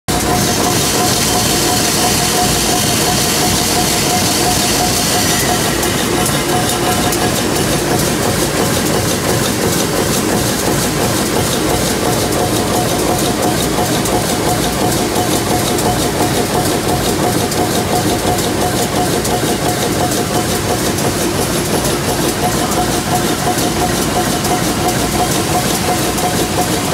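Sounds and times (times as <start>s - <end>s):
steady whine: 0.1s - 10.3s
wire machinery running: 0.1s - 26.9s.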